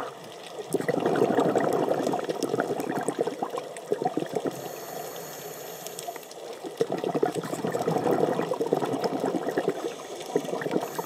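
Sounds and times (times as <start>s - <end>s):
underwater exhaust bubbling: 0.0s - 11.0s.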